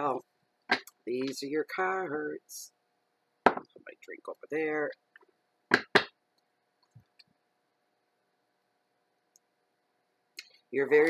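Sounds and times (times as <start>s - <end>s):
knocks on a tabletop: 3.5s - 3.7s.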